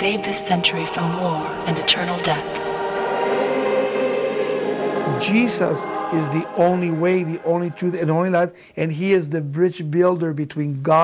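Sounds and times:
choir holding sustained notes: 0.0s - 8.6s.

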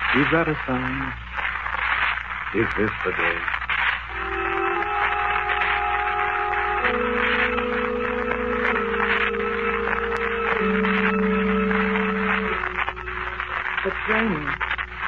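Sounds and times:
recording hiss: 0.0s - 15.0s
organ chords: 4.1s - 15.0s.

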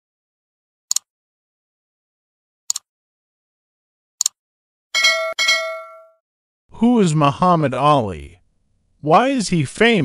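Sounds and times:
notification bell dings: 5.0s - 6.2s.

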